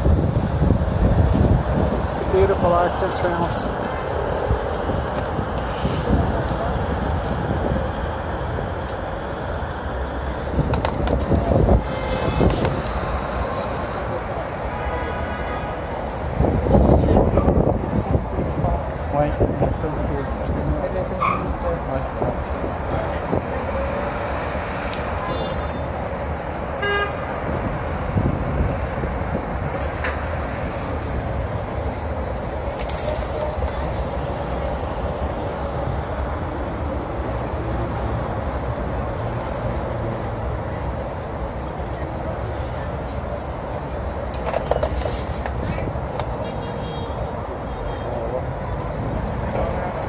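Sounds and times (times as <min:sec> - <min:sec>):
traffic rumble: 0:00.0 - 0:50.0
car horn toots: 0:26.8 - 0:27.2.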